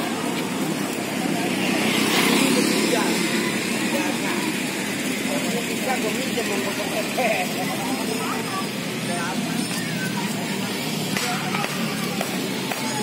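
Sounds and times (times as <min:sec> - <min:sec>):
vehicle passing: 0:00.0 - 0:12.7
background chatter: 0:00.0 - 0:13.0
road traffic noise: 0:00.0 - 0:13.0.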